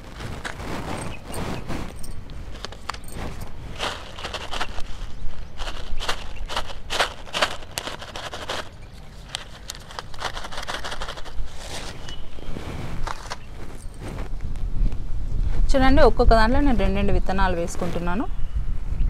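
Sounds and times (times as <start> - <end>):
plastic packet crinkling: 0.0 - 12.1, 13.0 - 13.8.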